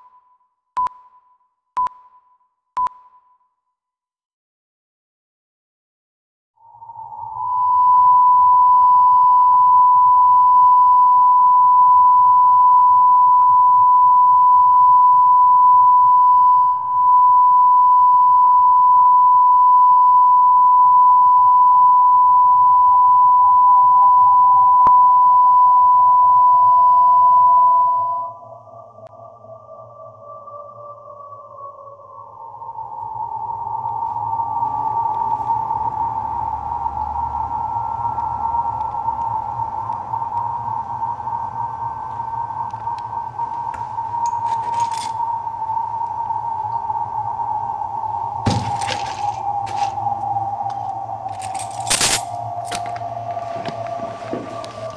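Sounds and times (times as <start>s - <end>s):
hazy sonar-like hum: 0.0s - 3.4s, 6.6s - 54.9s
steady high beep: 0.0s - 3.5s, 7.4s - 28.3s
slowly falling tone: 6.6s - 54.9s.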